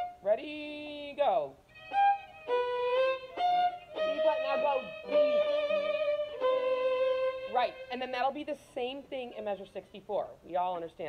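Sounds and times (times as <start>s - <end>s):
bowed violin notes: 0.0s - 0.2s, 1.7s - 8.3s.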